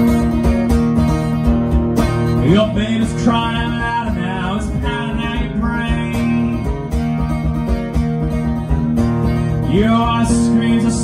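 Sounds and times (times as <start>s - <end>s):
acoustic guitar strumming: 0.0s - 11.0s
person singing: 9.6s - 11.0s.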